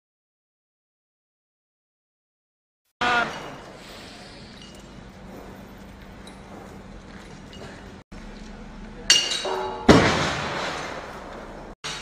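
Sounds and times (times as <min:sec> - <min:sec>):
metallic clank with ringing: 0:03.3 - 0:05.1, 0:09.1 - 0:10.1
heavy table slam: 0:09.5 - 0:12.0.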